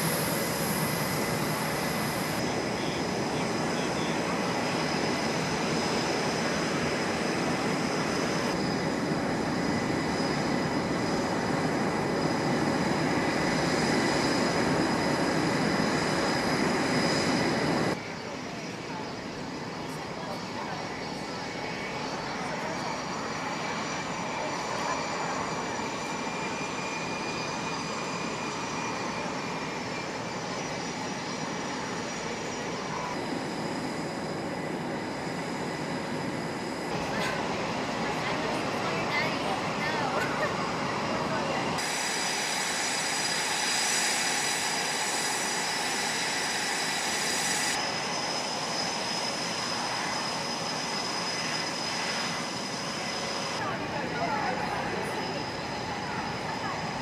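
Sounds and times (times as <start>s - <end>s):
jet engines whining: 0.0s - 57.0s
faint voices: 18.0s - 26.3s, 36.9s - 41.8s, 49.8s - 57.0s.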